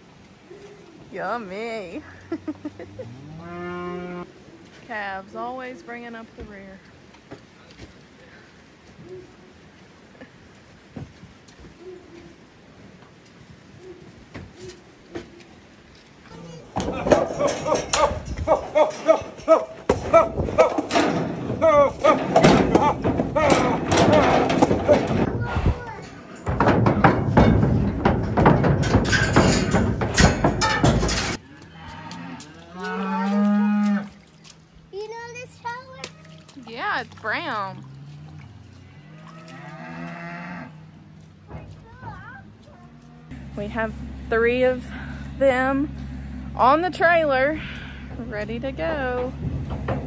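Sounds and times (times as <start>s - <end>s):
cattle bawling and mooing: 2.3s - 4.3s, 28.3s - 34.2s, 36.1s - 41.3s, 42.6s - 43.6s.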